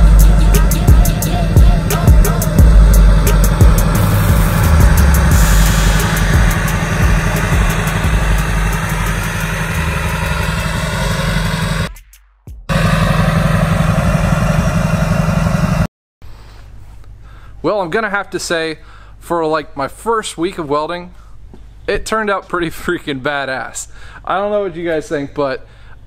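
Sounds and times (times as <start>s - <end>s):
background music: 0.0s - 11.8s
diesel pickup exhaust idling: 0.0s - 11.9s, 12.7s - 15.9s.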